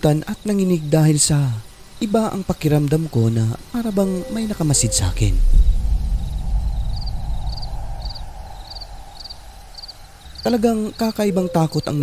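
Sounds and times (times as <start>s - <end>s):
cricket chirping: 0.0s - 12.0s
low steady rumble: 2.9s - 11.1s.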